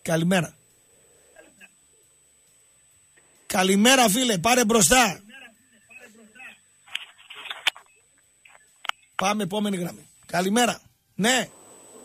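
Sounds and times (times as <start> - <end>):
soft hiss: 6.0 - 12.0.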